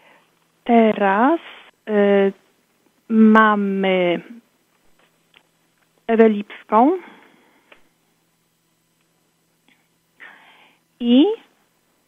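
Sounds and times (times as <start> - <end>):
person speaking: 0.6 - 2.4.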